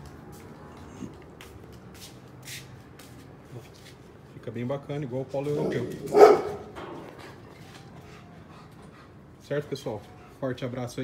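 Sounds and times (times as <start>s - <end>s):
footsteps and handling noise: 0.0s - 4.4s, 5.3s - 9.0s.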